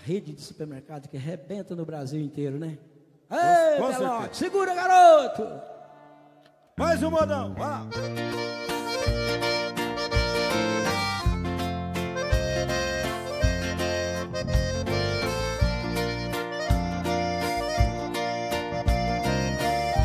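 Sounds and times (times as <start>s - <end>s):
accordion melody: 6.8s - 20.0s
deep bass notes: 6.8s - 20.0s.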